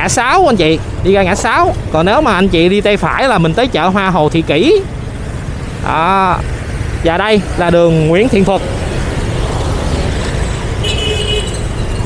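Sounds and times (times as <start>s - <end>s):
traffic engines rumbling: 0.0s - 12.0s
wind: 0.0s - 12.0s.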